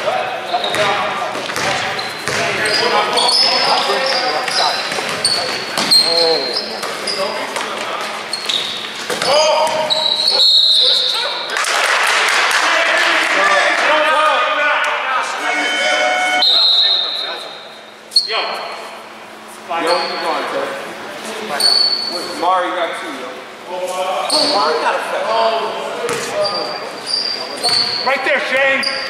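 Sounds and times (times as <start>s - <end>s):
echoing indistinct voices: 0.0s - 17.8s
sneakers squeaking on court: 0.5s - 11.4s, 26.1s - 28.1s
basketball bouncing: 0.7s - 2.6s, 4.5s - 6.1s, 9.1s - 10.0s, 26.1s - 26.3s.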